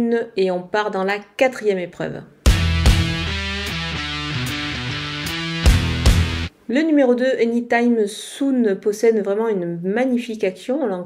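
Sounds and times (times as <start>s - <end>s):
bass line: 2.5s - 6.5s
strummed guitar chords: 2.5s - 6.5s.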